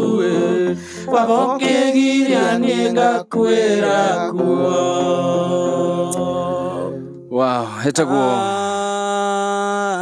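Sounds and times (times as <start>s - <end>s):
man singing into a microphone: 7.8s - 10.0s.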